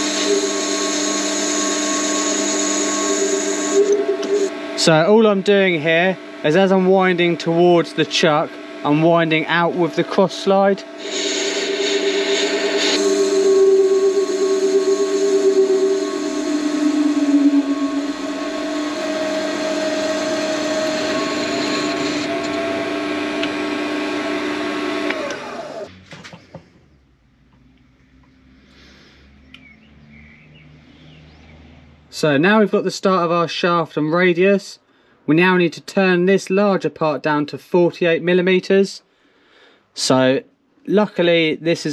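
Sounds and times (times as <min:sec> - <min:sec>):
cutting tool cutting aluminium: 0:00.0 - 0:04.6, 0:08.9 - 0:25.9
lathe motor whine: 0:00.0 - 0:25.9.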